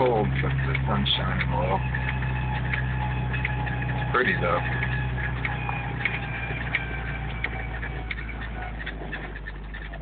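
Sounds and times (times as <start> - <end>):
engine and drivetrain drone: 0.0 - 10.0
high squeaks and rattles: 0.0 - 10.0.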